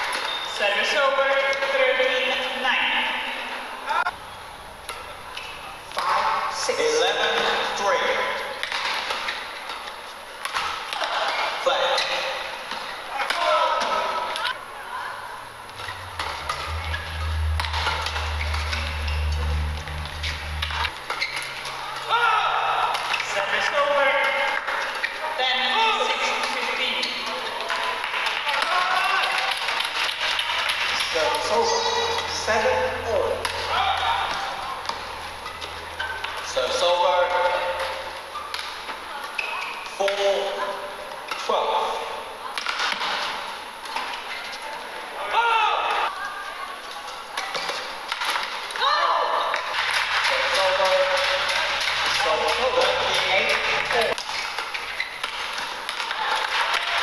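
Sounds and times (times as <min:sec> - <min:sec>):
shoes squeaking on court: 0:00.0 - 0:00.6, 0:15.7 - 0:22.0, 0:34.4 - 0:36.5, 0:54.2 - 0:55.6
voices in hall: 0:00.0 - 0:57.0
low hum: 0:15.3 - 0:21.1
racket hitting shuttlecock: 0:33.4 - 0:36.4.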